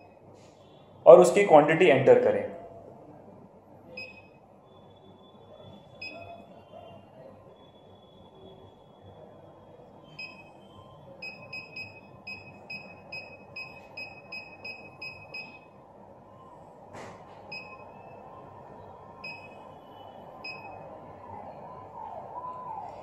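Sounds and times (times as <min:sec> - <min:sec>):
short high keypad beeps: 0:10.2 - 0:10.5.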